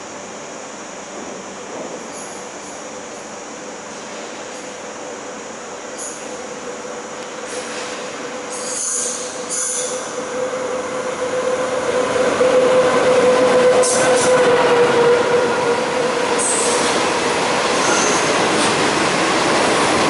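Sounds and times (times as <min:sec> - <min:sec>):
electric train passing: 0:00.0 - 0:20.0
high wheel squeals: 0:08.5 - 0:10.3, 0:17.7 - 0:18.5.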